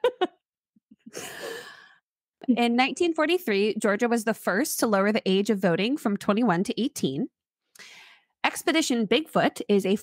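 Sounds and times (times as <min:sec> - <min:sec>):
person laughing: 0:00.0 - 0:00.4
long breathy sigh: 0:01.1 - 0:02.0.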